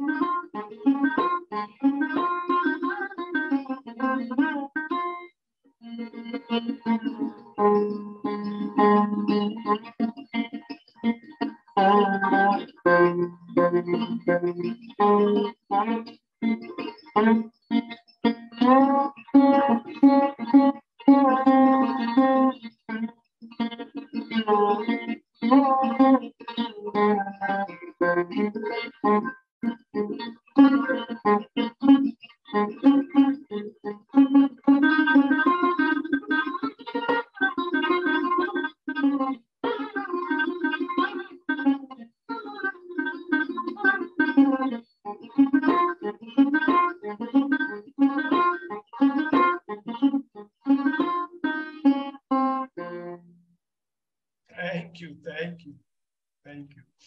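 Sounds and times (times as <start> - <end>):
plucked fretless lute: 0.0 - 5.2, 6.0 - 53.3.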